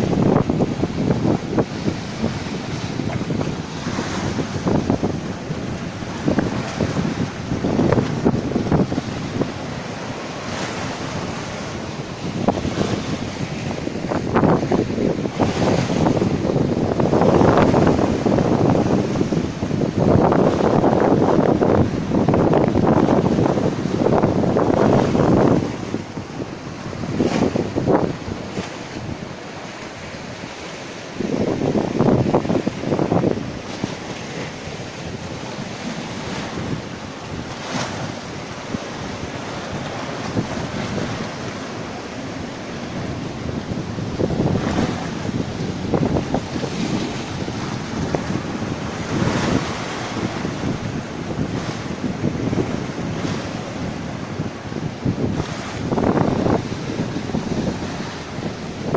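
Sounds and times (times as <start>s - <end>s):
surf breaking on rocks: 0.0s - 58.9s
wind buffeting microphone: 0.0s - 58.9s.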